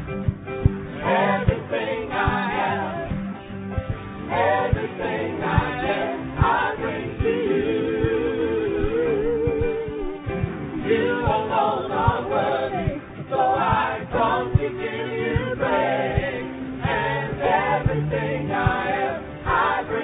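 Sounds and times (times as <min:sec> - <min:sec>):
group singing worship song: 0:00.9 - 0:20.0.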